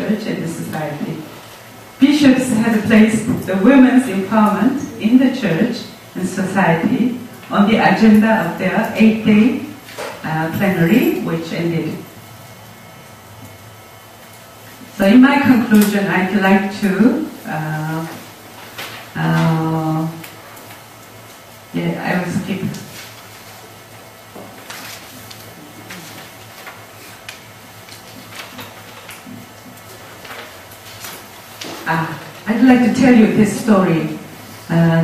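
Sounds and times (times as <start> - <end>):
low sound system hum: 0.0 - 35.0
steady quiet hiss: 0.0 - 35.0
paper rustling: 18.6 - 19.5, 24.4 - 32.4.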